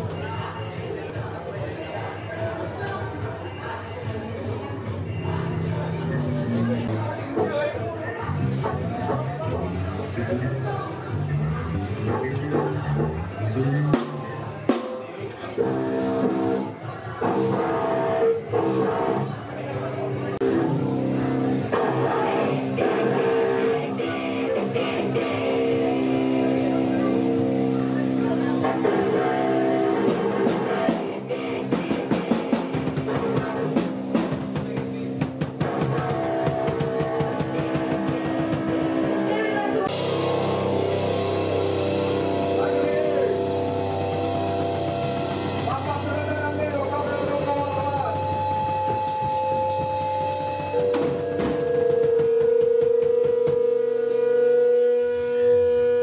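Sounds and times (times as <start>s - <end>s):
busy drumming: 11.4s - 56.0s
electric guitars ringing chords: 15.6s - 54.8s.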